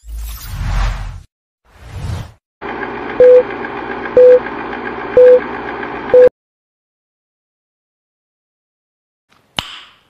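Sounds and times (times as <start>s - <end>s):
countdown beep: 3.2s - 3.4s, 4.2s - 4.4s, 5.2s - 5.4s, 6.1s - 6.3s.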